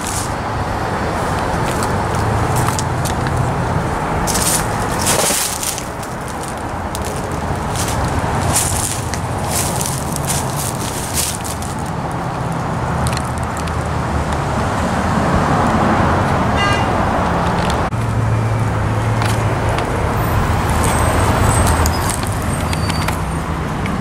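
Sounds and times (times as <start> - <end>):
footsteps on dry leaves: 0.0 - 13.7
road traffic passing: 0.0 - 24.0.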